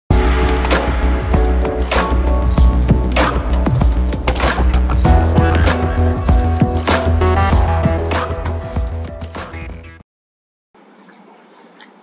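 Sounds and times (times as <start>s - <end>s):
drum hits: 0.1s - 8.1s
intro music with steady bass: 0.1s - 10.0s.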